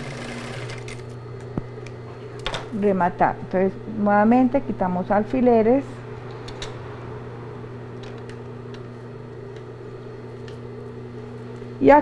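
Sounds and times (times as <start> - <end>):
sewing machine motor hum: 0.0 - 1.2.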